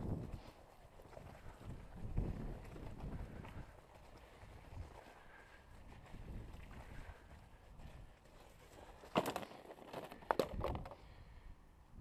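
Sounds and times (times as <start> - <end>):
wind rumbling on microphone: 0.0 - 8.9
footsteps on dirt road: 0.0 - 11.0.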